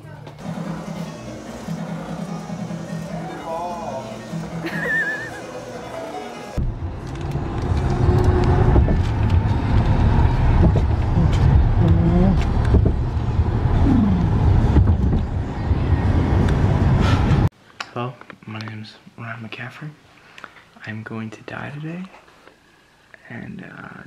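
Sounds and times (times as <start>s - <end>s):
car road noise rumble: 6.6s - 17.5s.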